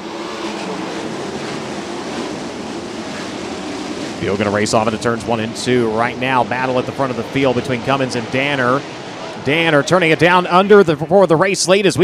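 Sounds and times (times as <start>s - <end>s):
racing car engines at full throttle: 0.0s - 12.0s.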